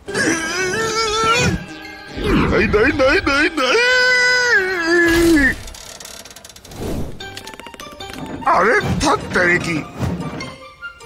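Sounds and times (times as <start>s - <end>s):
cartoon character vocal cry: 0.0s - 2.5s
rising whoosh: 6.7s - 7.3s.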